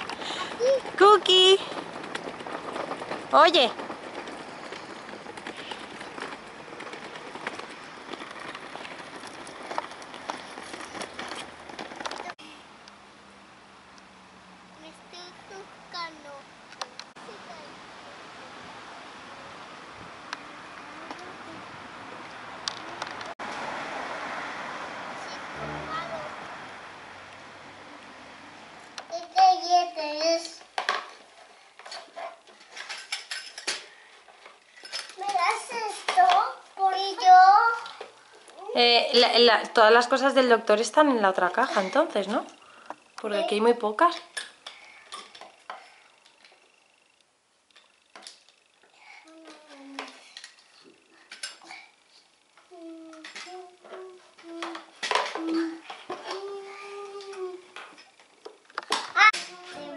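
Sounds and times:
young children talking: 0.3 - 1.8, 17.2 - 17.8, 20.6 - 21.8, 25.2 - 26.6, 55.4 - 57.8, 59.2 - 59.9
plastic toy pieces clattering: 31.8 - 33.8.

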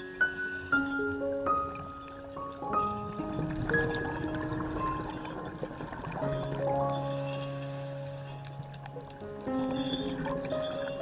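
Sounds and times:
calm slow background music: 0.0 - 11.0.

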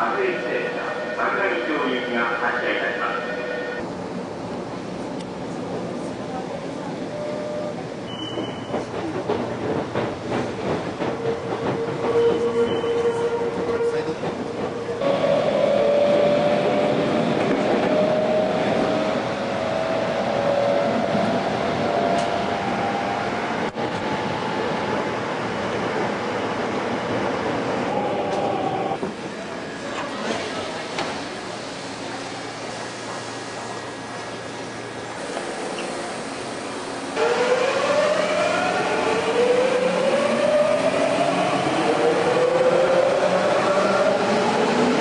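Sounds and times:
rising train whine: 0.0 - 45.0
train wheels on rails rumbling: 7.7 - 45.0.

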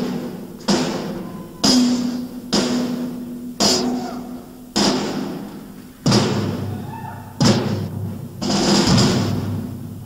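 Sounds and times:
drum strikes ringing: 0.0 - 6.8, 7.4 - 10.0.

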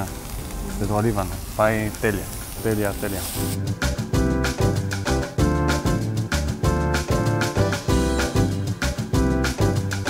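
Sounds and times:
background music with quick beat: 2.4 - 10.0.

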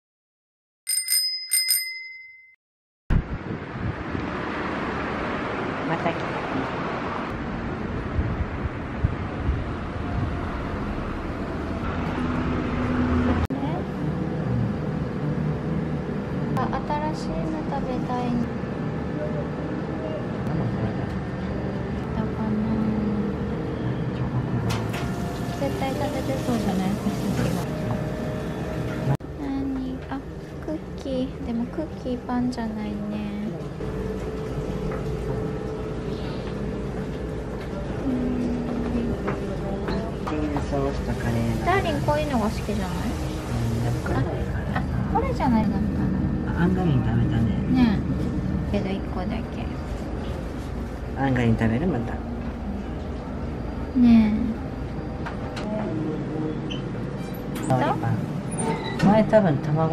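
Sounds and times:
small bell dinging: 0.9 - 2.6
outdoor street noise: 3.1 - 59.9
low indoor hum: 7.3 - 59.9.

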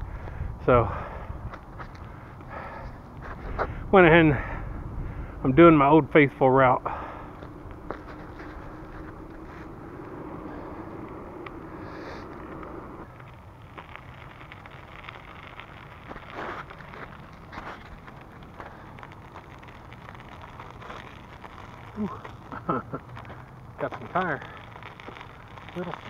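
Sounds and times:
bicycle tyres rolling on icy path: 0.0 - 26.0.

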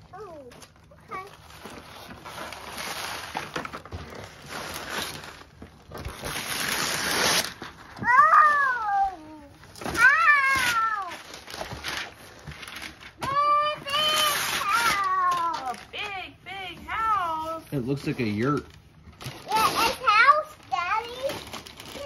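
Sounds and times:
wrapping paper tearing: 0.2 - 9.0, 9.6 - 16.2, 17.7 - 22.0.

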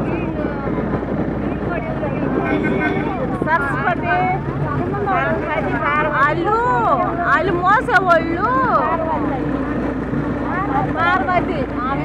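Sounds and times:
people talking: 0.0 - 12.0
steady low hum: 0.0 - 12.0.

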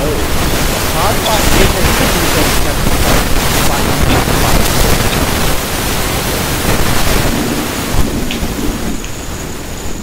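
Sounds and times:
loud rumbling hissing noise: 0.0 - 10.0.

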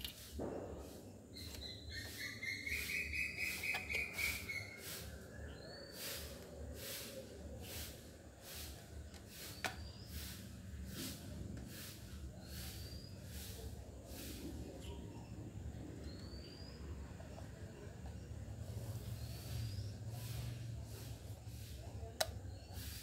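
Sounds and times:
faint bird chirps: 1.3 - 7.6, 12.4 - 21.2.

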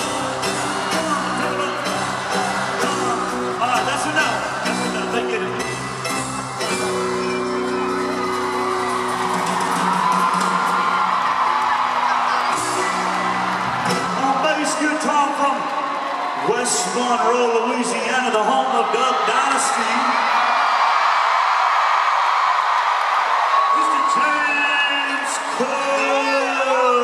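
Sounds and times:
crowd cheering and whooping: 0.0 - 27.0.

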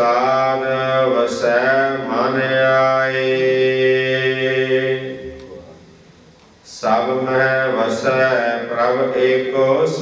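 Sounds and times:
man chanting: 0.0 - 5.8, 6.7 - 10.0.

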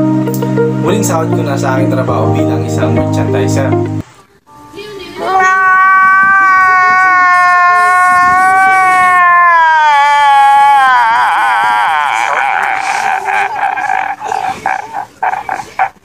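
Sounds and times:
man crying and sobbing: 8.5 - 16.0.

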